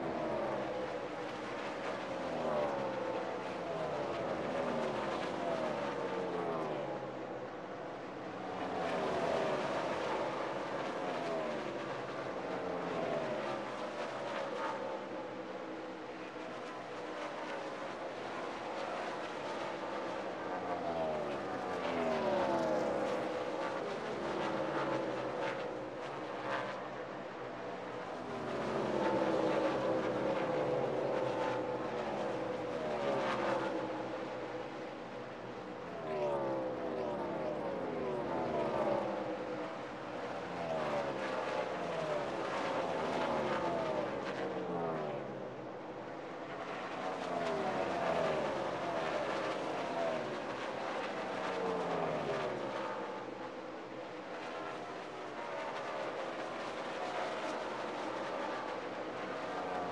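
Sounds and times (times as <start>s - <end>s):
race cars passing by: 0.0s - 59.9s.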